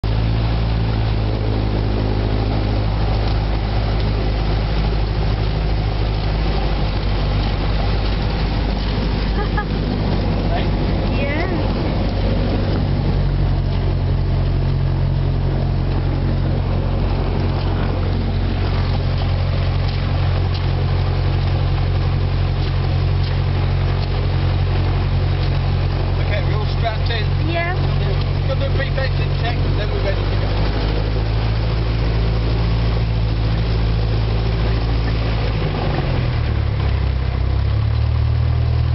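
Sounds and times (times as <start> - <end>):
light aircraft engine running: 0.0 - 38.9.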